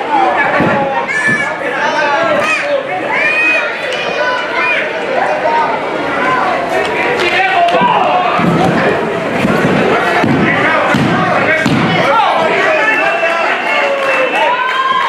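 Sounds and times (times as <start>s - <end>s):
crowd shouting: 0.0s - 15.0s.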